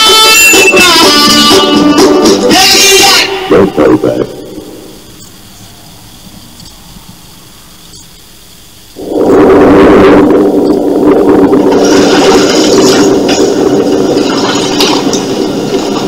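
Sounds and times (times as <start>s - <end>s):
tape hiss: 0.0s - 16.0s.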